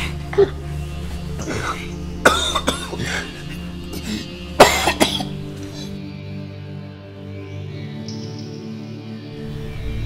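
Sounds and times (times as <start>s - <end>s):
background music: 0.0s - 10.0s
person coughing: 1.4s - 5.9s.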